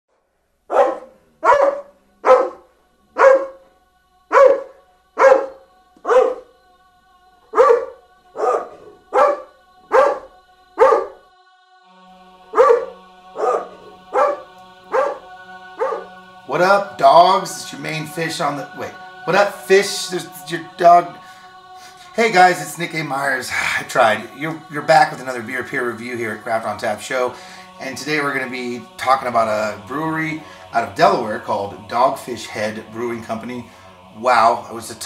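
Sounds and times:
dog barking: 0.7 - 2.6, 3.2 - 3.6, 4.3 - 6.5, 7.5 - 11.2, 12.5 - 15.2, 15.8 - 16.1
sustained music notes: 0.8 - 35.0.

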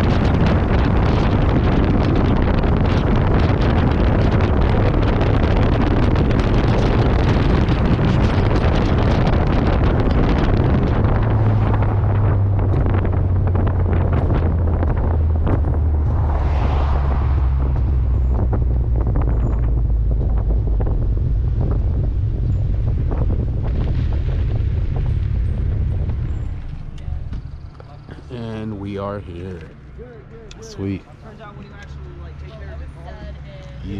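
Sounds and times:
car engine drone: 0.0 - 33.9
road noise: 0.0 - 33.9
wind buffeting microphone: 0.0 - 33.9.

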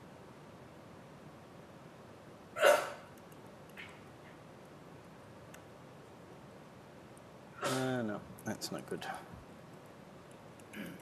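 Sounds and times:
low background noise: 0.0 - 11.0
person hiccup or cough: 2.6 - 3.0, 7.6 - 7.9.

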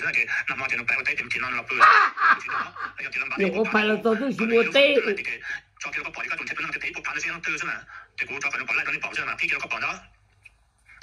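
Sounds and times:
person talking: 1.7 - 5.3.

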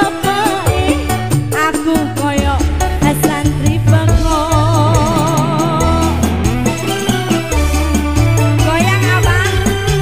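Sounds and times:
live band playing: 0.0 - 10.0
hand drums: 0.7 - 9.0
long wavering vibrato note: 4.6 - 7.8.

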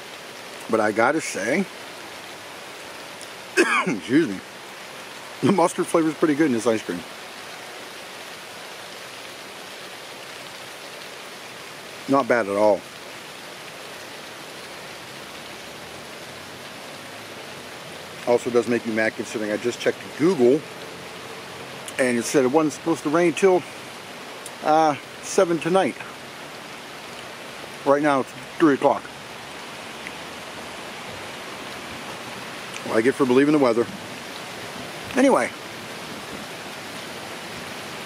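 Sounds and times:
steady rain falling: 0.0 - 38.0.

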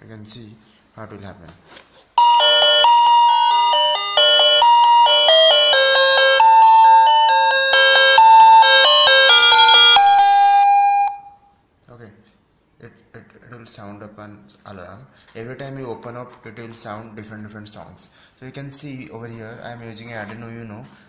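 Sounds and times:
electronic doorbell chime melody: 2.2 - 11.5.

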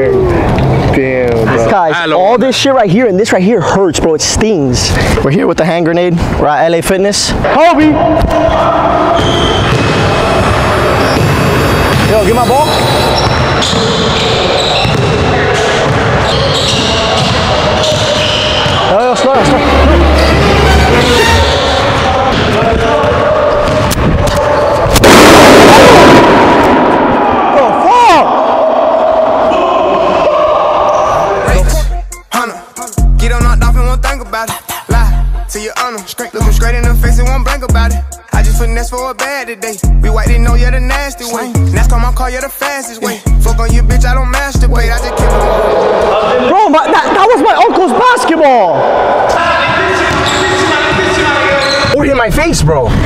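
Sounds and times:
people shouting and yelling: 7.4 - 31.8, 44.4 - 52.8
basketball bursting with echo: 8.0 - 18.9, 21.4 - 27.5, 49.6 - 52.0
people talking: 12.0 - 12.8, 16.8 - 23.2, 44.6 - 52.9
music with heavy beat: 31.5 - 45.6.

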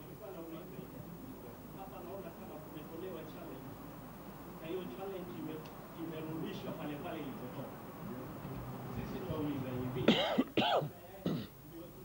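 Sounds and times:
man clearing his throat: 10.1 - 11.6.

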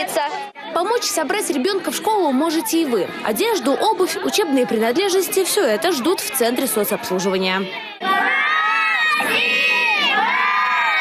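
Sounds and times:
children shouting and cheering: 7.6 - 11.0.

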